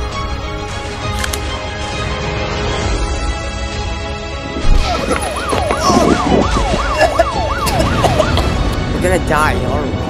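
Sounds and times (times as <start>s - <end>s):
emergency siren yelping: 4.6s - 8.8s.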